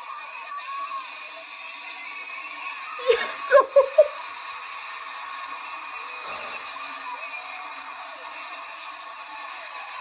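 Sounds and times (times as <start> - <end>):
arena crowd noise: 0.0 - 10.0
faint music: 0.0 - 10.0.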